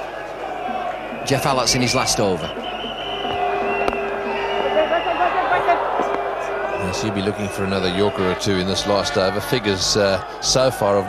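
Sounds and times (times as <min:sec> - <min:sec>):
crowd chanting and cheering: 0:00.0 - 0:11.0.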